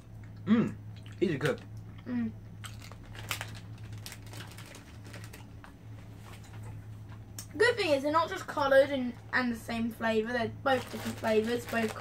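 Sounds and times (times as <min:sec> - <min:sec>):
chewing foam sweets: 0:00.0 - 0:07.5
steady low hum: 0:00.0 - 0:12.0.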